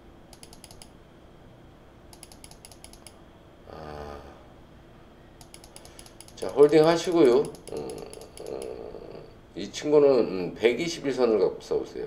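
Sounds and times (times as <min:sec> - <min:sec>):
computer mouse clicks: 0:00.3 - 0:00.9, 0:02.1 - 0:03.2, 0:05.4 - 0:08.8.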